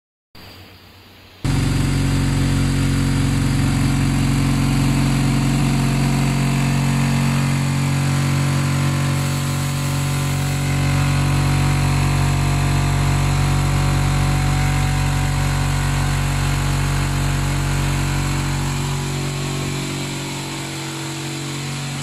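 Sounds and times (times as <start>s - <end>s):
machine motor hum: 1.4s - 22.0s.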